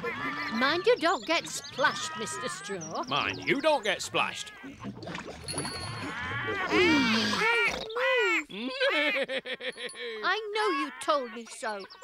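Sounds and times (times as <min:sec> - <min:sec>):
cartoon voice cackling: 0:10.5 - 0:12.0.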